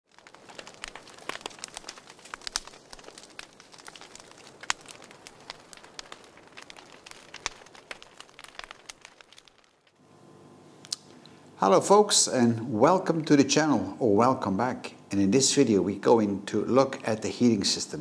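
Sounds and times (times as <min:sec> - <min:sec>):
crackling clicks and pops: 0:00.0 - 0:10.0, 0:10.8 - 0:11.4
faint steady hiss: 0:00.2 - 0:18.0.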